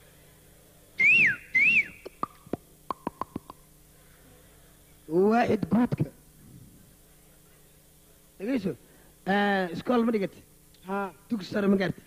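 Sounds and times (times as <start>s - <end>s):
person whistling chirps: 1.0s - 3.5s.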